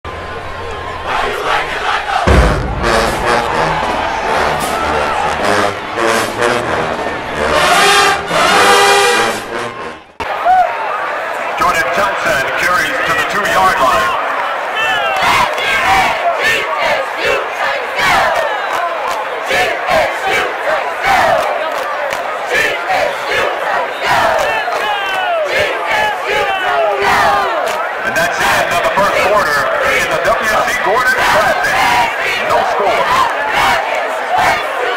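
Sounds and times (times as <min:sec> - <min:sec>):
stadium crowd: 0:00.0 - 0:34.9
cheerleaders chanting and yelling: 0:00.1 - 0:34.9.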